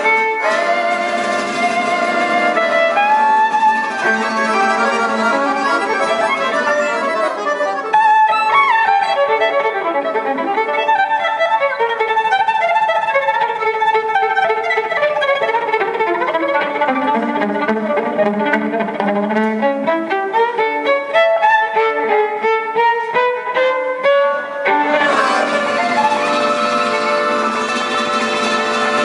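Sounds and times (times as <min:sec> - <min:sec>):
rhythmic acoustic guitar: 0:00.0 - 0:08.1, 0:24.8 - 0:29.0
accordion: 0:00.0 - 0:11.8, 0:24.6 - 0:29.0
violin melody: 0:00.0 - 0:29.0.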